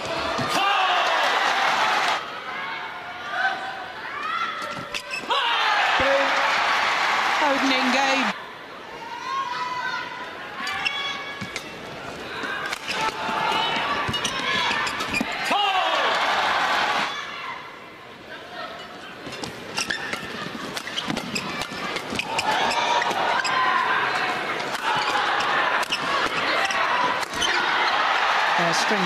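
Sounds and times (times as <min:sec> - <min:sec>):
arena crowd noise: 0:00.0 - 0:29.0.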